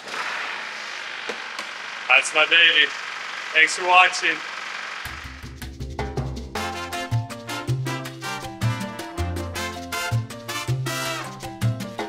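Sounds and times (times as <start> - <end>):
generator engine running: 0.0 - 7.4.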